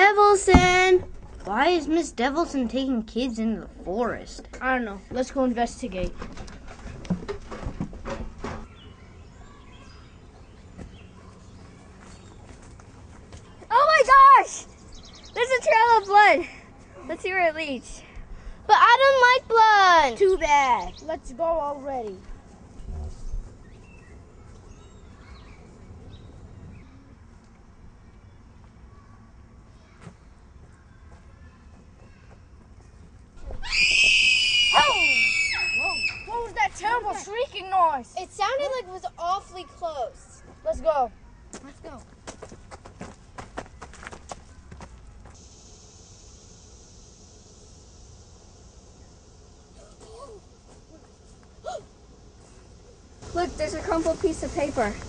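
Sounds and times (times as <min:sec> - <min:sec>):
outdoor background noise: 0:00.0 - 0:55.0
faint bird chirps: 0:08.6 - 0:12.4
loud high-pitched scream: 0:33.4 - 0:36.5
falling cries from voices: 0:33.6 - 0:36.4.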